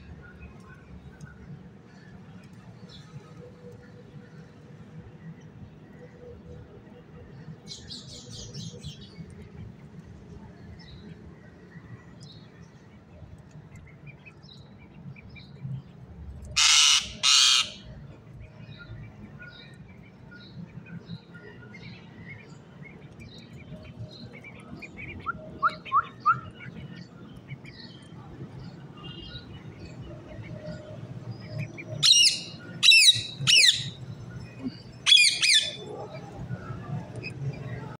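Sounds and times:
birds calling: 0:16.5 - 0:18.0, 0:18.6 - 0:37.9
parakeet squawks: 0:16.6 - 0:17.8, 0:32.0 - 0:34.0, 0:35.0 - 0:35.8.

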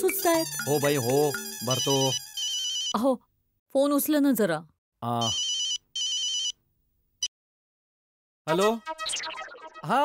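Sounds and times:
mobile phone ringing: 0:00.0 - 0:03.0, 0:05.2 - 0:06.6.

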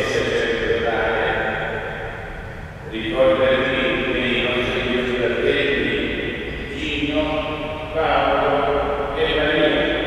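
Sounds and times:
man chanting a prayer: 0:00.0 - 0:01.6, 0:02.8 - 0:10.0.

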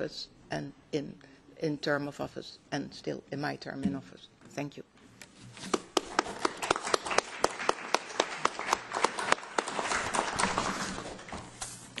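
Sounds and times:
audience clapping: 0:05.6 - 0:11.3.

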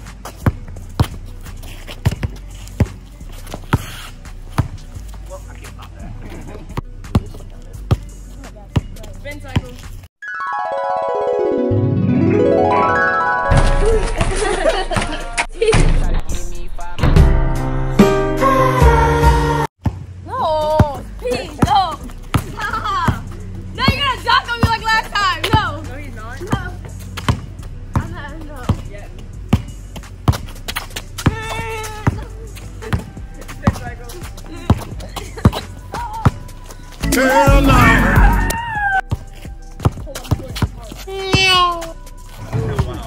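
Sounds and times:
faint background music: 0:00.0 - 0:17.3, 0:20.0 - 0:43.0
basketball bouncing on concrete: 0:00.2 - 0:01.2, 0:01.9 - 0:03.9, 0:04.5 - 0:04.9, 0:06.8 - 0:09.8, 0:19.8 - 0:20.1, 0:20.7 - 0:25.8, 0:26.4 - 0:36.5, 0:39.8 - 0:41.9
voices calling out: 0:31.1 - 0:39.1.

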